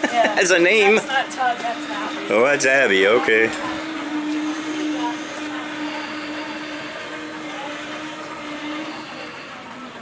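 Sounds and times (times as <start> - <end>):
robot electric drive whirring: 0.9 - 10.0.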